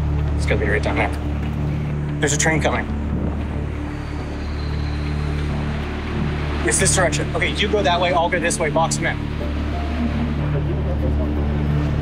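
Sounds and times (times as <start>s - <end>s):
low music bed: 0.0s - 12.0s
train rumbling: 0.0s - 12.0s.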